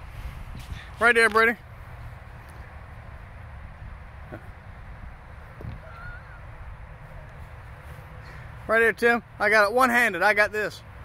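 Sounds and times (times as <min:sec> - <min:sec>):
wind rumble on microphone: 0:00.0 - 0:01.0, 0:03.2 - 0:07.7.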